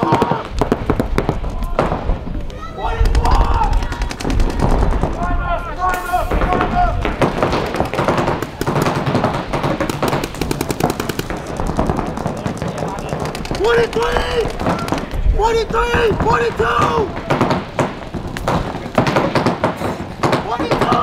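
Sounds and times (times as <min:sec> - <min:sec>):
paintball guns firing: 0:00.0 - 0:21.0
voices calling out: 0:01.4 - 0:21.0.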